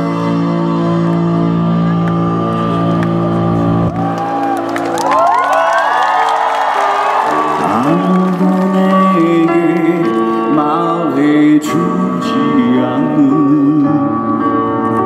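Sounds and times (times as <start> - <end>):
audience cheering and whooping: 3.8 - 9.1.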